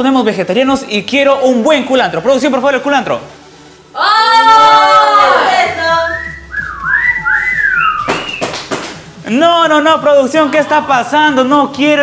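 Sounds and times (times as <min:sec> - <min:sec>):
swooping whistling: 0:06.0 - 0:08.6.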